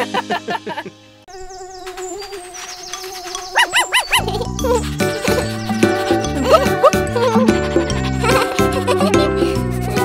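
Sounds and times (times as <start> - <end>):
cartoon mosquito buzzing: 1.3 - 8.5
cartoon laughter: 3.6 - 10.0.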